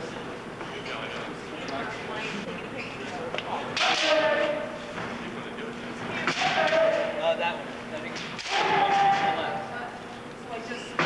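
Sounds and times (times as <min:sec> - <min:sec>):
fighters shouting yells: 0:03.8 - 0:04.8, 0:06.2 - 0:07.3, 0:08.4 - 0:09.8.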